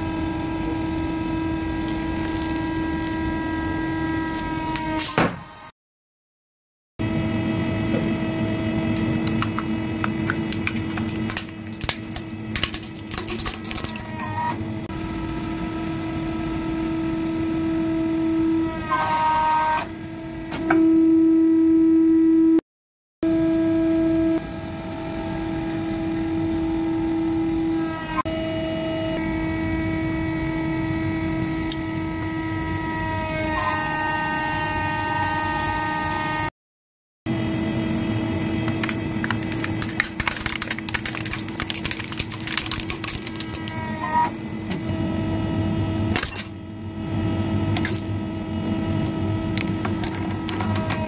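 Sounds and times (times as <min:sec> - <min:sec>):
hydraulic press motor whine: 0:00.0 - 0:05.7, 0:07.0 - 0:22.5, 0:23.2 - 0:36.5, 0:43.3 - 0:51.0
plastic toy cracking and snapping: 0:01.9 - 0:03.2, 0:10.3 - 0:14.1, 0:38.8 - 0:43.8, 0:49.6 - 0:51.0.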